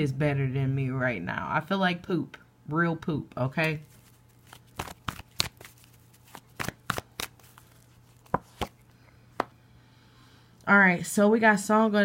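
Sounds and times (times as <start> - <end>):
cards shuffling: 3.6 - 9.0.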